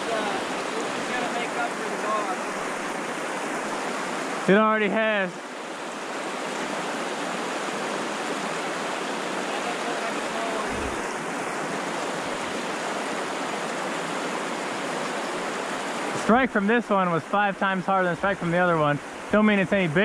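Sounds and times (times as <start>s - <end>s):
river water rushing over rapids: 0.0s - 20.0s.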